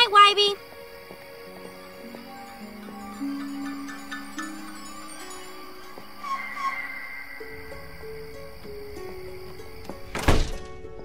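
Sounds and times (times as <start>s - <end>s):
soft slow film score: 0.0s - 11.0s
door shutting thud: 10.1s - 10.8s.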